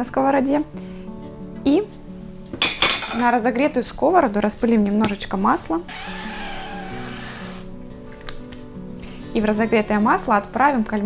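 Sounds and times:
oil spray hissing: 6.0 - 7.7.

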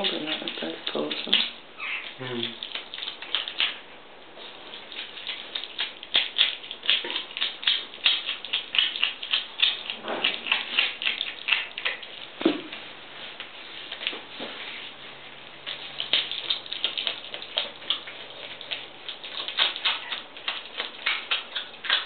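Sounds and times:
otter chewing and crunching fish: 0.0 - 22.0.

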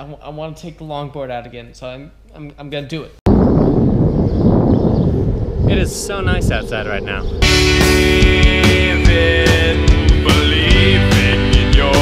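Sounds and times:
wind buffeting microphone: 3.3 - 9.7.

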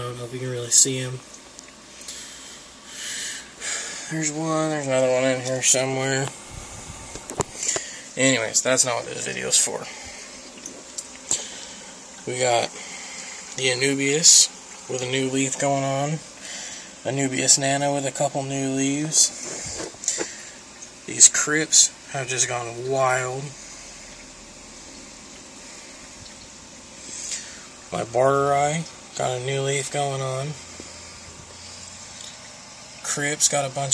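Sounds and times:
aquarium water hissing: 0.0 - 33.9.

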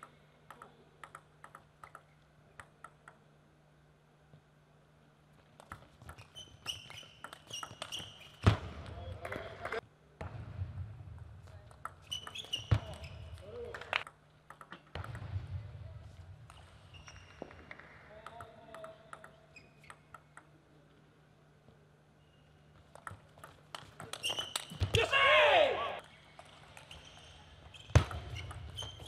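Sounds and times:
ping pong ball clicking: 0.5 - 3.3, 6.8 - 8.0, 14.0 - 15.2, 18.2 - 20.6, 22.9 - 24.4
player shouting loudly: 25.0 - 26.0.

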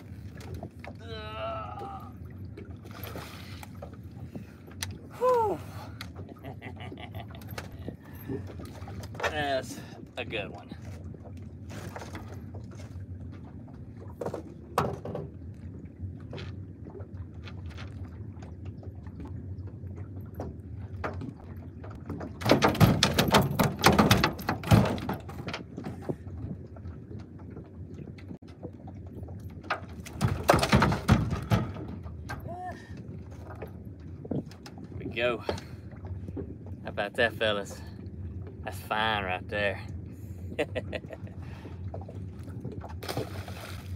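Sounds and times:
wind and water rumble: 0.0 - 43.9.

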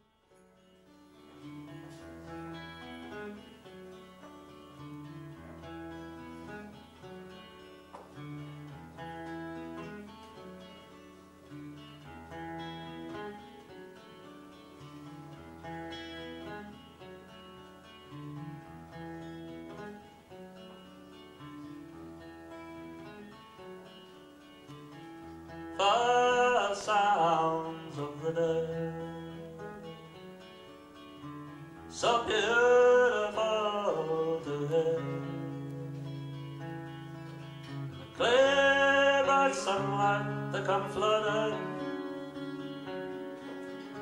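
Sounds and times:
fingerpicked acoustic guitar: 0.0 - 44.0.

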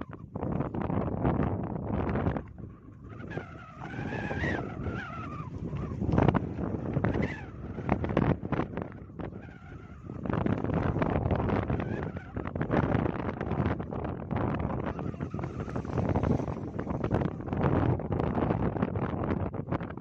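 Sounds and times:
wind buffeting microphone: 0.0 - 20.0
wavering high squeal: 2.8 - 12.6, 14.8 - 17.5.

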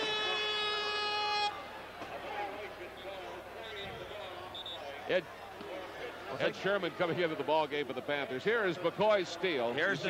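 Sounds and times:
scorer's horn tone: 0.0 - 1.7
crowd murmur: 0.0 - 10.0.

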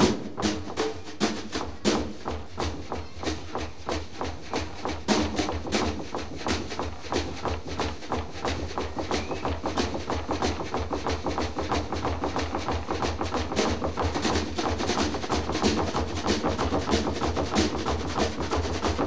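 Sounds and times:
snare drum fast strokes: 0.0 - 19.0.

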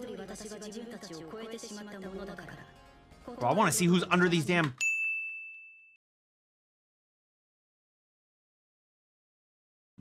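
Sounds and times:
bell-like ding: 4.8 - 6.0.

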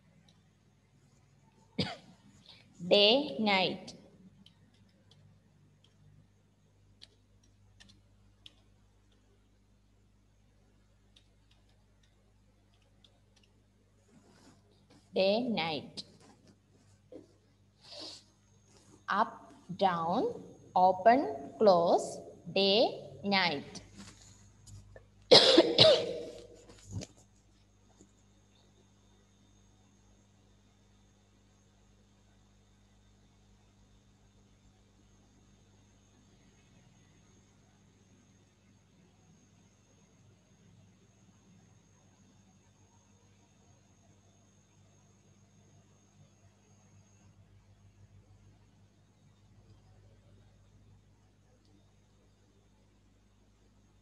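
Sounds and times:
person coughing: 1.8 - 2.2, 25.3 - 26.4
woman speaking: 2.8 - 4.0, 15.2 - 16.1, 19.1 - 23.9.

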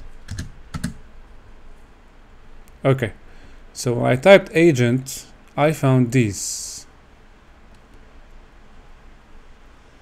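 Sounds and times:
keyboard keystrokes: 0.2 - 1.0.

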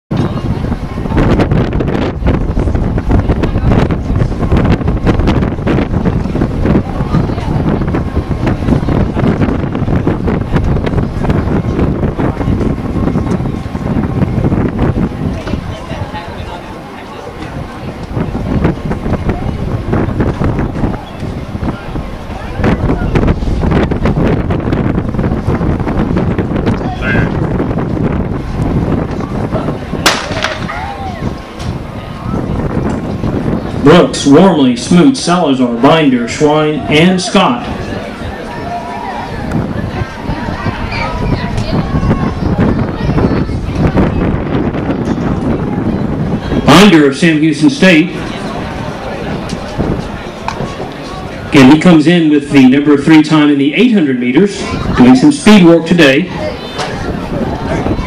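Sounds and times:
wind buffeting microphone: 0.1 - 58.0
starting gun shot: 30.0 - 30.8
faint crack: 30.1 - 30.8.

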